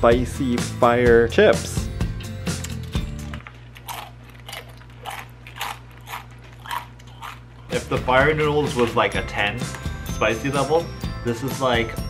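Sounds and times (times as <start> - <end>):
background music: 0.0 - 3.4, 7.7 - 12.0
chewing crunchy chips: 2.5 - 7.7.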